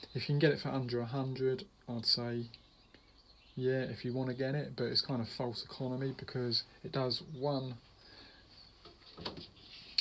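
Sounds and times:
small rustle: 7.9s - 10.0s
faint handling noise: 8.5s - 10.0s.

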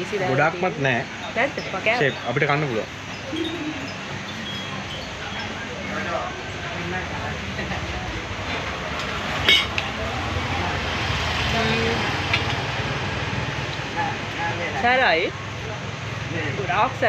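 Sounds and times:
vehicle engine rumble passing: 0.0s - 17.0s
cutlery clinking on plate: 9.4s - 9.9s.

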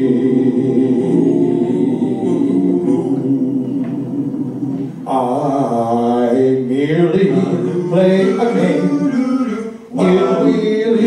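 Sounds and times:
male vocal group singing a cappella: 0.0s - 11.0s.

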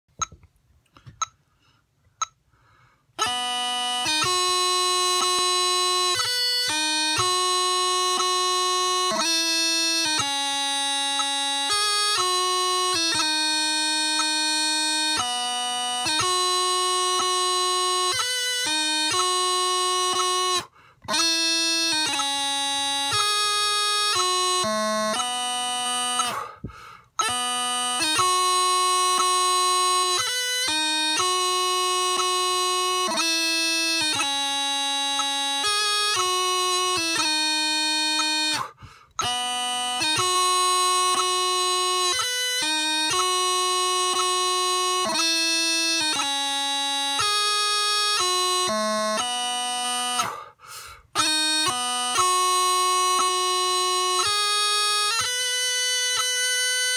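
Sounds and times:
bagpipe chanter melody: 1.1s - 56.9s.

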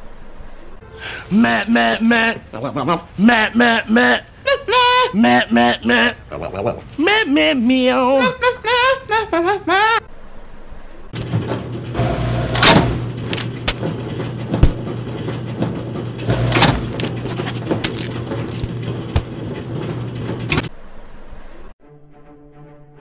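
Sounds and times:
low mechanical hum: 10.1s - 21.7s
machine clattering and knocks: 11.2s - 20.7s.

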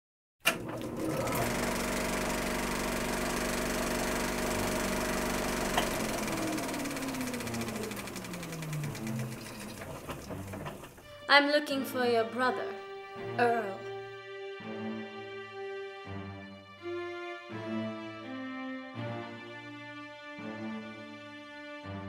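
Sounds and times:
film projector clattering: 0.4s - 11.0s.

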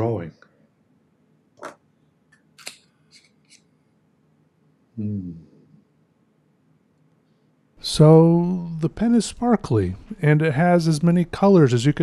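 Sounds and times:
fountain pen clicks and scrapes: 2.6s - 3.7s.

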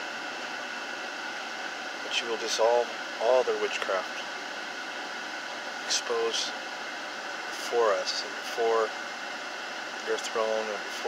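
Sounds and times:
car ventilation fan hissing: 0.0s - 11.0s.

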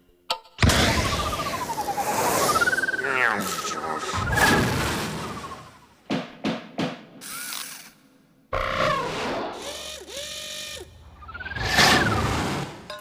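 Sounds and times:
whistle-like rising falling tone: 0.6s - 5.8s
whirring servo sounds: 7.2s - 8.0s, 8.6s - 12.2s.

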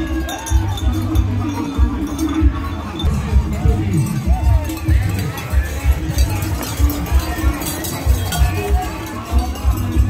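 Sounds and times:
crowd voices: 0.0s - 10.0s
music with thumping bass beat: 0.0s - 10.0s.

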